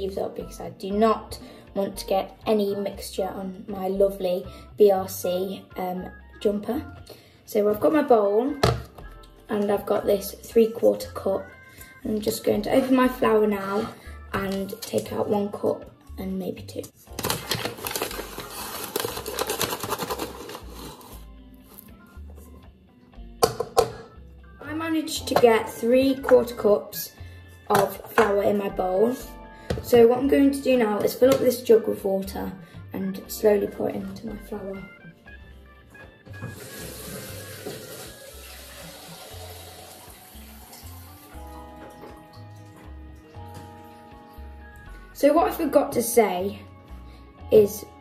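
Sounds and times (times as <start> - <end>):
background music: 0.0 - 48.0
paper bag crinkling: 17.1 - 21.9, 36.5 - 38.8
tap water running into jug: 36.4 - 43.4.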